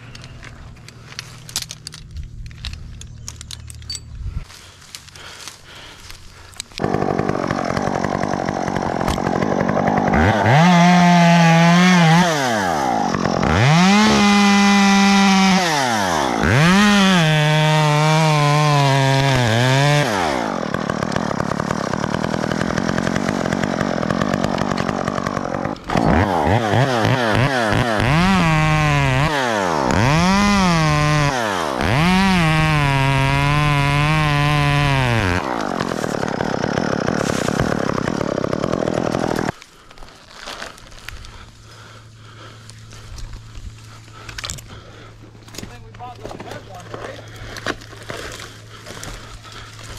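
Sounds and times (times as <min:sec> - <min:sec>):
chainsaw revving and cutting wood: 0:04.5 - 0:49.9.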